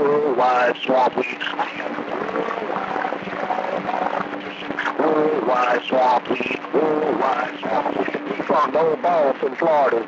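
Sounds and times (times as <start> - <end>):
faint garbled radio voices: 0.0 - 10.0
radio static hiss: 0.0 - 10.0
low hum: 0.3 - 9.2.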